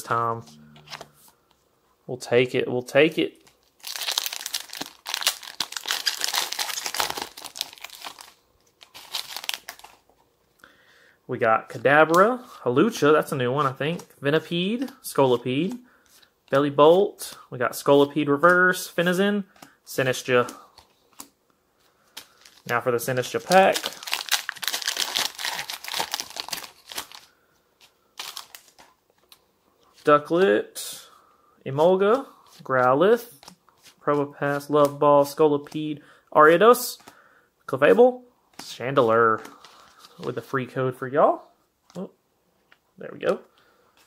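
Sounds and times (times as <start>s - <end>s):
foil wrapper crinkling: 3.5s - 10.0s, 23.4s - 27.3s, 28.2s - 28.9s.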